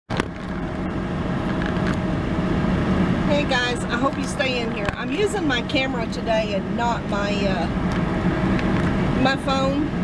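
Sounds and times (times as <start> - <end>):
car engine hum inside cabin: 0.1 - 10.0.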